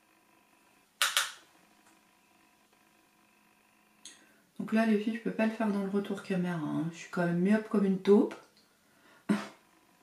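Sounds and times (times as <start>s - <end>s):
faint steady hum: 0.0s - 10.0s
small hard object clicking: 1.0s - 1.4s.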